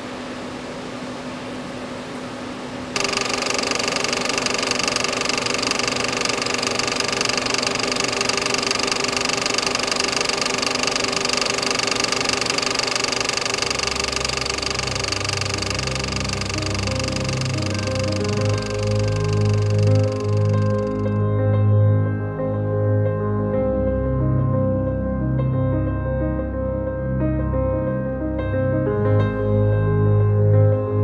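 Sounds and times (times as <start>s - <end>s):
film projector whirring: 3.0s - 21.2s.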